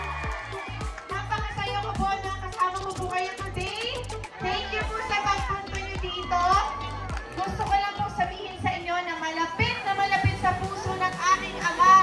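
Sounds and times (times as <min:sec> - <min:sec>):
crowd voices: 0:00.0 - 0:12.0
dance music with singing: 0:00.0 - 0:12.0.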